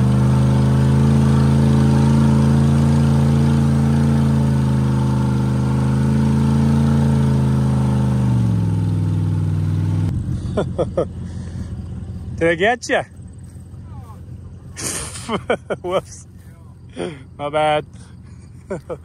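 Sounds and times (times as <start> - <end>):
pickup engine running under load: 0.0 - 19.0.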